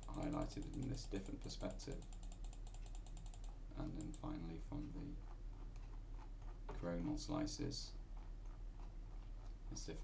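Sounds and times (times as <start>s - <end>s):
rapid computer clicks: 0.0s - 4.5s.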